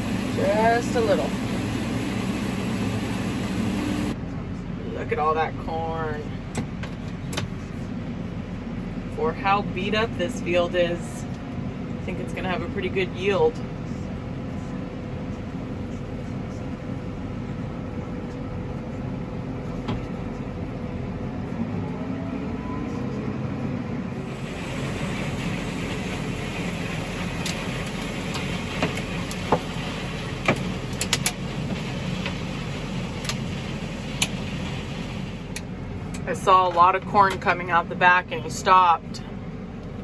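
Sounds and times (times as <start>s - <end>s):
harvesting machinery working: 0.0s - 4.7s, 24.0s - 37.5s
tractor engine drone: 0.0s - 40.0s.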